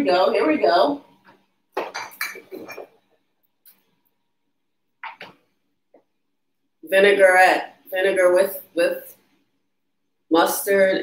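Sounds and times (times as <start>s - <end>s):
dishes and glass clinking: 1.8s - 3.0s.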